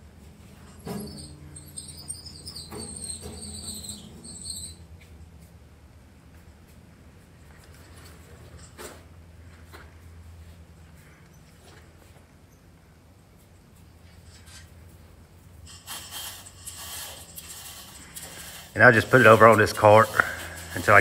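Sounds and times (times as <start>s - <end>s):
chain hoist chain rattling: 15.6s - 21.0s.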